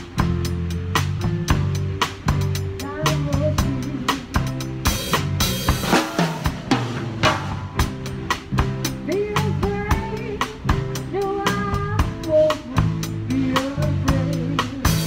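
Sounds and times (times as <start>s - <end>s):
backing music with sliding notes: 0.0s - 15.0s
drum kit beat: 0.0s - 15.0s.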